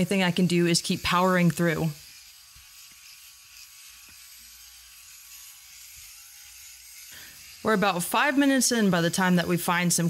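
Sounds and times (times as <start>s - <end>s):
electric shearing handpiece running: 0.0s - 10.0s.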